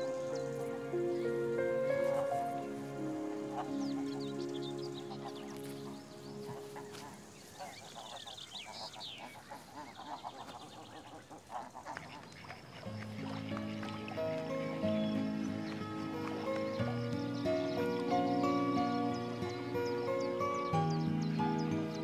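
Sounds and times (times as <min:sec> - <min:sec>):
soft background music: 0:00.0 - 0:10.8, 0:11.5 - 0:22.0
ducks quacking: 0:00.0 - 0:22.0
small birds chirping: 0:00.0 - 0:22.0.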